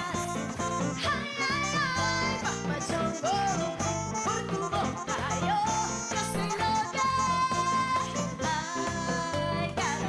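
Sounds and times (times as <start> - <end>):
live band playing: 0.0 - 10.0
woman singing into microphone: 0.0 - 10.0.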